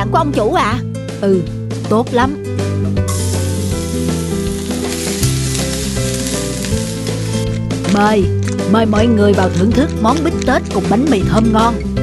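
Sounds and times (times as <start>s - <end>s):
background music: 0.0s - 12.0s
steaks sizzling in a hot pan: 3.1s - 7.7s
tongs stirring meat: 3.2s - 7.5s.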